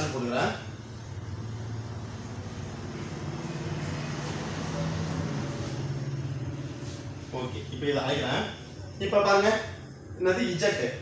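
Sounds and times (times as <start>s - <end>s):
low engine-like drone: 0.0s - 11.0s.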